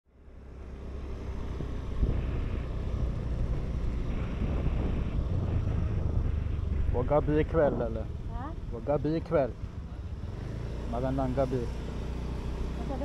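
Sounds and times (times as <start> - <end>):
scooter engine running: 0.2 - 13.0
wind buffeting microphone: 1.2 - 10.7.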